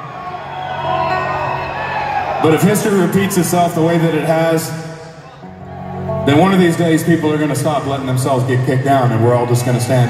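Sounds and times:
crowd whooping: 0:00.0 - 0:06.2.

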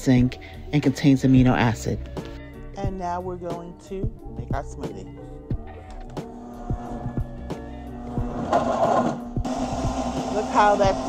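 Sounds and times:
background music with beat: 0:00.0 - 0:11.0
blender crushing ice: 0:08.0 - 0:11.0.

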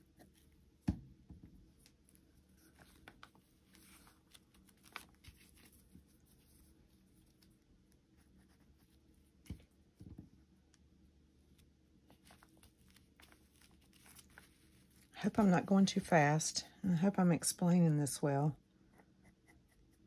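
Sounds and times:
paper rustling: 0:01.8 - 0:07.6, 0:12.0 - 0:16.1.

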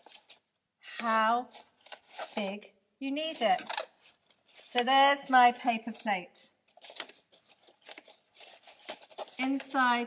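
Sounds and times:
paper crinkling and rustling: 0:00.0 - 0:02.5, 0:03.2 - 0:04.8, 0:05.4 - 0:10.0.

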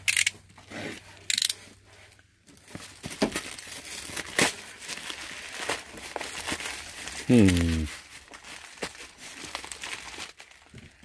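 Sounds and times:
plastic crinkling and rustling: 0:01.0 - 0:11.0
plastic mailer tearing: 0:02.9 - 0:11.0.

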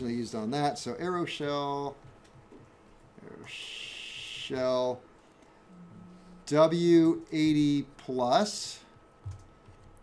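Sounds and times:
man speaking slowly: 0:03.2 - 0:05.0, 0:05.8 - 0:08.9.

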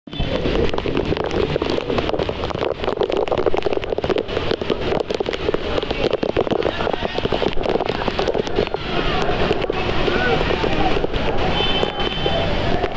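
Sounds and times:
heavy rain pouring: 0:00.1 - 0:12.9.

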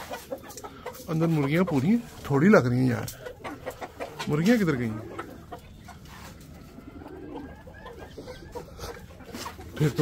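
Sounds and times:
soft bird calls: 0:03.2 - 0:10.0.

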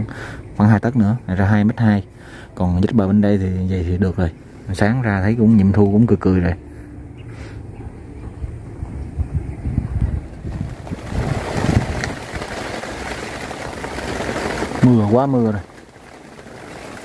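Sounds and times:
low rumble: 0:03.2 - 0:14.8
rain hissing on ground: 0:10.2 - 0:17.0.

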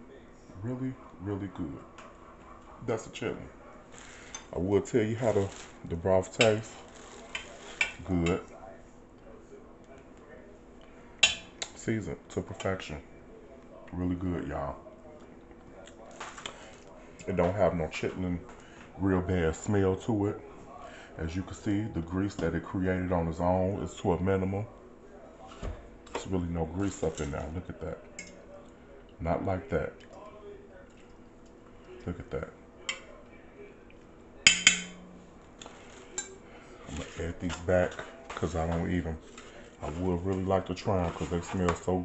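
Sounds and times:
metal fork clinking on pot: 0:11.2 - 0:11.7, 0:28.2 - 0:28.4, 0:34.5 - 0:35.2.

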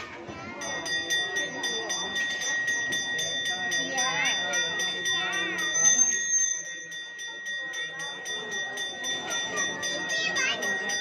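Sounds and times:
brass hand bell ringing: 0:00.6 - 0:11.0.

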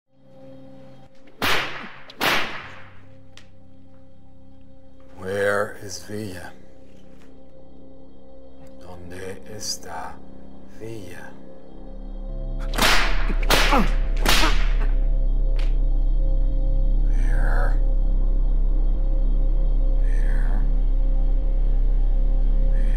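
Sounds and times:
sharp cracks with ringing tail: 0:01.4 - 0:03.0, 0:12.7 - 0:14.8
low steady drone: 0:02.7 - 0:22.9.

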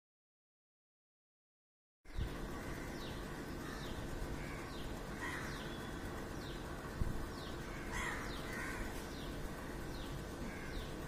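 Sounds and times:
bird chirping: 0:02.1 - 0:11.0
crow cawing: 0:02.5 - 0:05.8, 0:07.6 - 0:09.8, 0:10.4 - 0:10.9.

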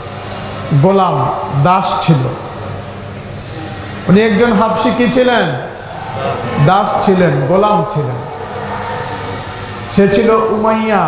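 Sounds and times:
steady low hum: 0:00.0 - 0:11.0
man speaking: 0:04.1 - 0:08.3.

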